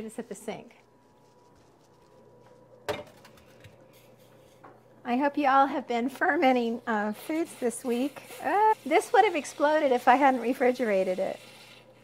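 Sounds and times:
object set down on counter: 2.9 - 3.8.

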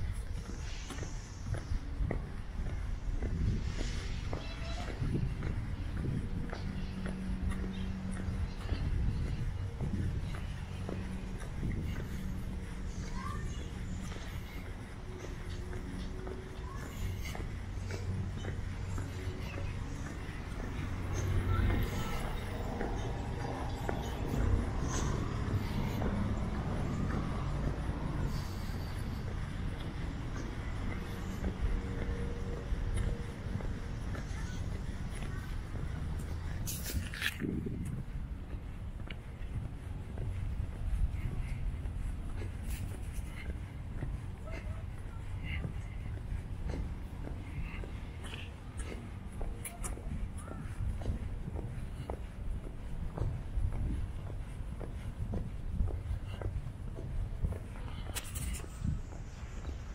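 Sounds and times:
faint voices: 0.0 - 59.9
low rumble of traffic: 0.0 - 59.9.

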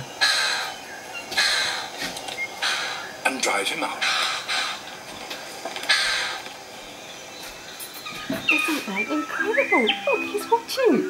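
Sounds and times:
harsh rasping bird calls: 0.0 - 11.0.

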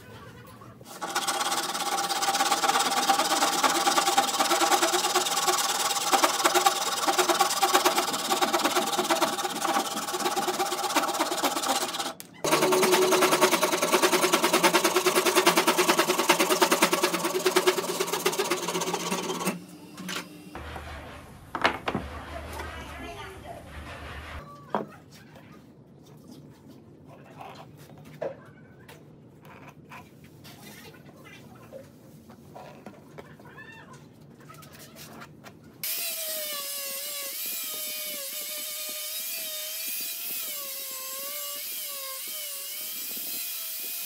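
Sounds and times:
hand saw cutting wood: 0.9 - 19.6.

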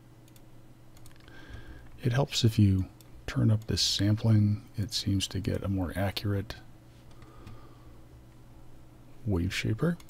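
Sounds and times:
faint low room hum: 0.0 - 10.0.

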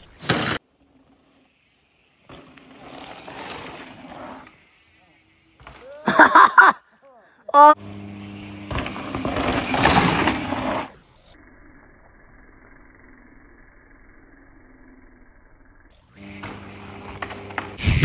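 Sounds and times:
tyre and wind rush: 17.8 - 18.0.

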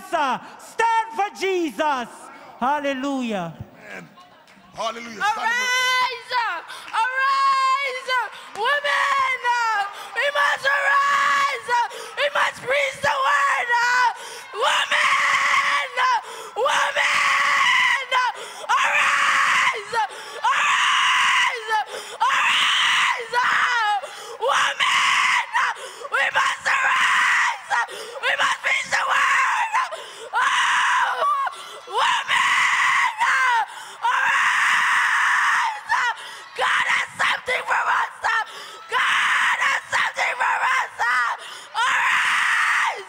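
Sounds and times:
woman screaming into a microphone: 5.2 - 43.0.

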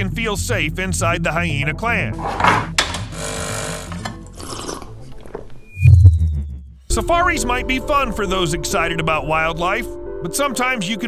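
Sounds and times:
background music: 0.0 - 11.0
high beep: 5.7 - 6.6.

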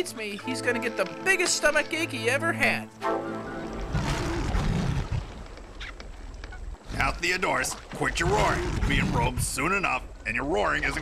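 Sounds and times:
lion roaring: 3.9 - 5.3, 8.1 - 9.4.

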